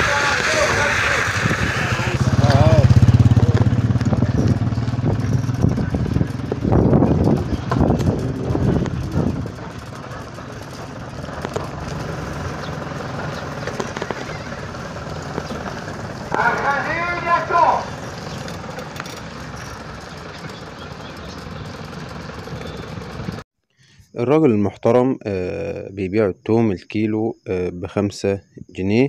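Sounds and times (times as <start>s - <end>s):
small vehicle engine running: 0.0s - 23.4s
street background noise: 0.0s - 23.4s
voices talking: 0.0s - 23.4s.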